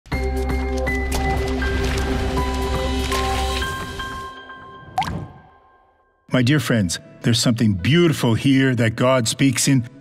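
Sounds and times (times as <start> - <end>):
water drop plop effect: 5.0 - 5.5.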